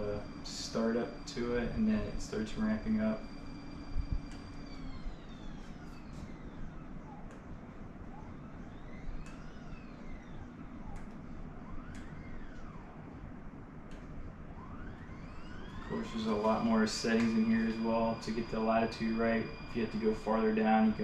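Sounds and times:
drive motors whining: 0.0s - 21.0s.

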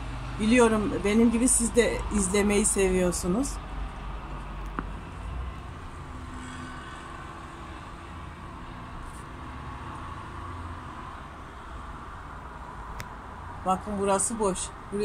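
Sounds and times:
low urban rumble: 0.0s - 15.0s.

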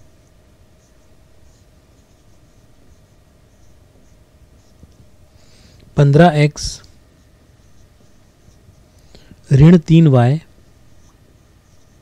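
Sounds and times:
marker pen writing on whiteboard: 0.0s - 5.1s, 6.5s - 9.0s, 10.6s - 12.0s.

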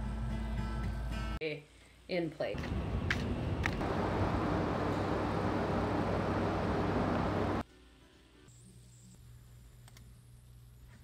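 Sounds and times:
loud rushing ambience: 2.7s - 7.6s
thin high whine: 3.8s - 7.6s.

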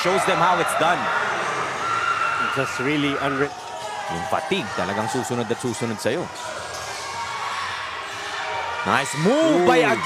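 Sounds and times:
indoor gym background noise: 0.0s - 10.0s.

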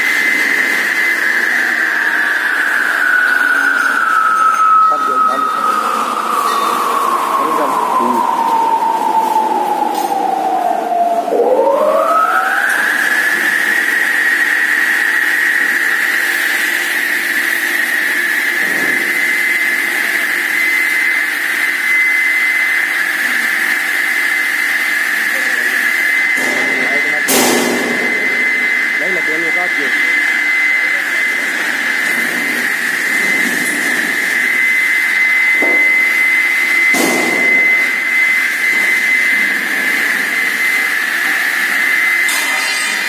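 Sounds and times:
saw motor high whine: 0.0s - 43.0s.

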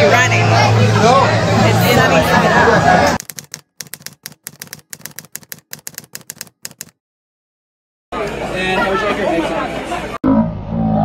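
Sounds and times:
keyboard typing clicks: 3.2s - 7.0s.

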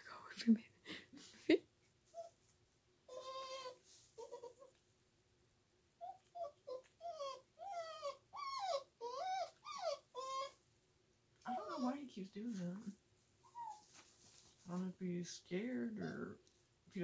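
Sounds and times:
puppy whining: 2.1s - 2.5s, 3.1s - 4.8s, 6.0s - 10.6s, 11.5s - 12.0s, 13.4s - 14.0s.

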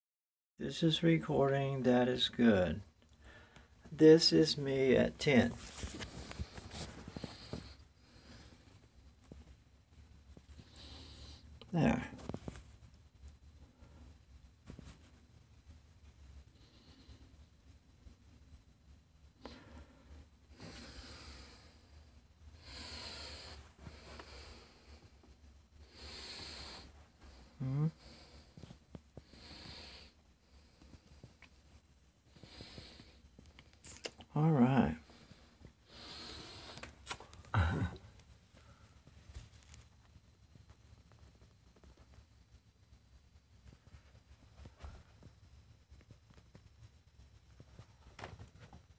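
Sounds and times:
soft hissy breaths: 0.7s - 48.9s.

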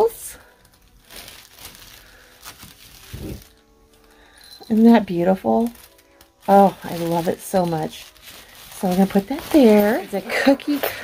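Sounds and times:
tissue paper crinkling: 0.0s - 11.0s.

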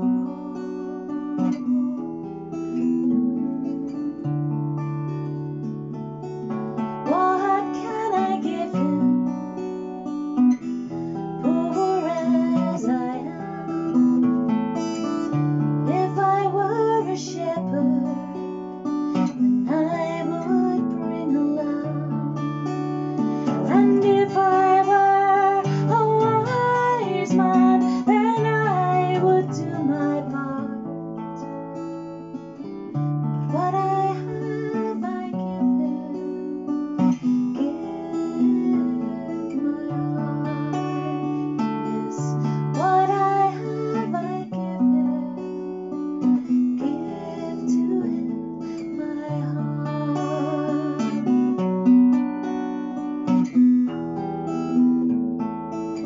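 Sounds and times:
woman singing: 0.0s - 4.4s, 6.8s - 31.5s, 32.6s - 53.7s
acoustic guitar strumming: 0.0s - 56.0s.

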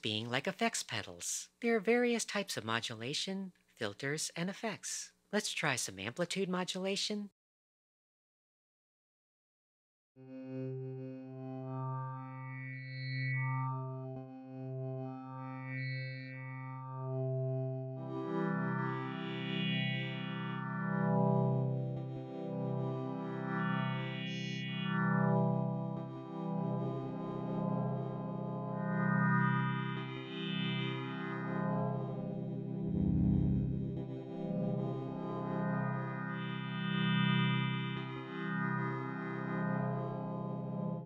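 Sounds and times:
sustained synthesizer tone: 10.2s - 40.8s
deeper synthesizer note: 31.9s - 35.8s.

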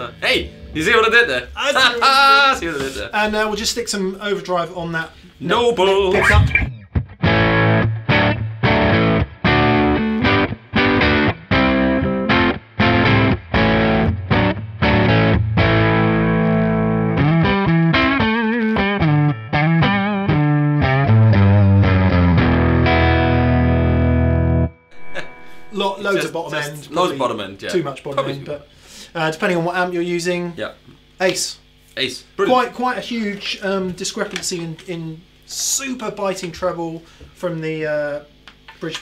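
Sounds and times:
overdriven electric guitar: 6.2s - 25.8s.

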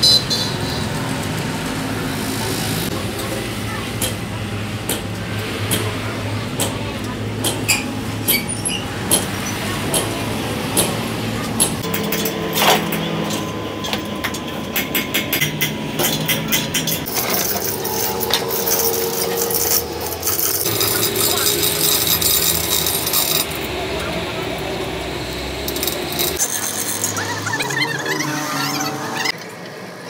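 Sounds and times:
voices talking: 15.8s - 30.0s
metal clinks and rattles: 16.0s - 23.7s, 25.6s - 27.8s.

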